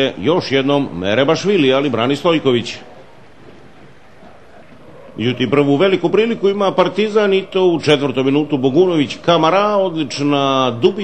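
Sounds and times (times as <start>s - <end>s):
stadium background noise: 0.0s - 11.0s.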